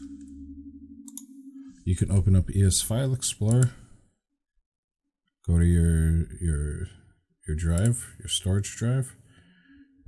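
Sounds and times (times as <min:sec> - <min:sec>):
steady low hum: 0:00.0 - 0:04.0
mouse clicks: 0:01.0 - 0:01.3, 0:03.4 - 0:03.8
man speaking: 0:01.8 - 0:03.9, 0:05.4 - 0:09.2.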